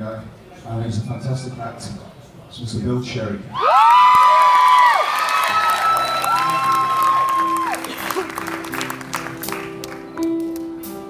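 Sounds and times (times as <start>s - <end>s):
audience applauding and cheering: 3.6s - 10.6s
long shrill whistles: 4.6s - 7.9s
band holding steady notes: 6.6s - 11.0s.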